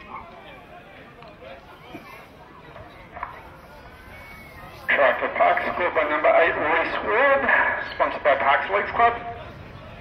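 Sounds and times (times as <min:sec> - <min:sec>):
man commentating: 0:04.9 - 0:09.4.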